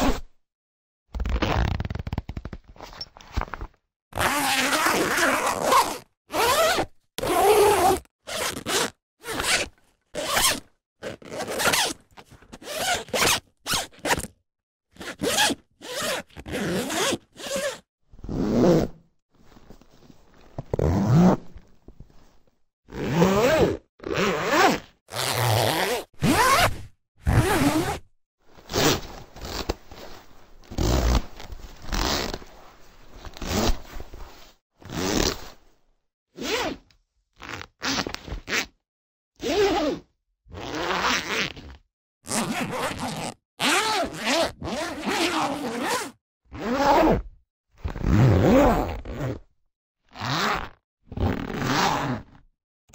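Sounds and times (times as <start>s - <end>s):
zippers zipped and unzipped: 0.0s - 0.4s, 1.1s - 3.2s, 4.2s - 21.6s, 22.9s - 32.5s, 33.1s - 35.6s, 36.4s - 38.8s, 39.4s - 49.5s, 50.1s - 52.4s.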